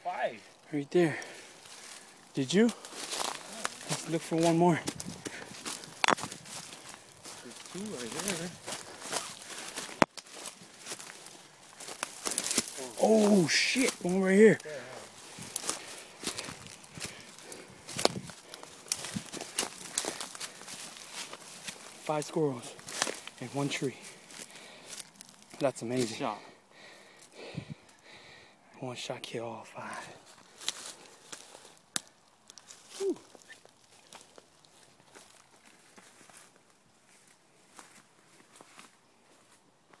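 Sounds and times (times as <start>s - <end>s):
leaves and twigs crackling: 0.0s - 28.4s, 29.0s - 40.0s
footsteps through leafy undergrowth: 1.2s - 27.5s, 29.7s - 40.0s.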